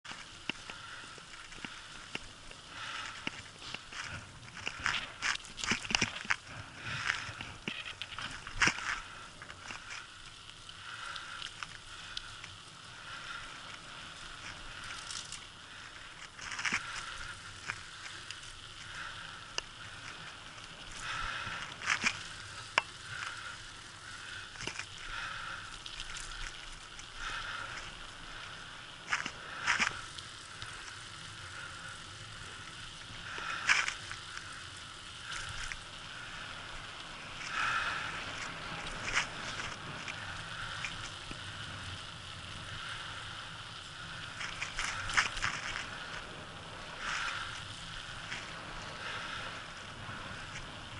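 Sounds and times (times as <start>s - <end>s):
bicycle clicks and rattles: 0.0s - 50.9s
bicycle tyre and road noise: 0.0s - 50.9s.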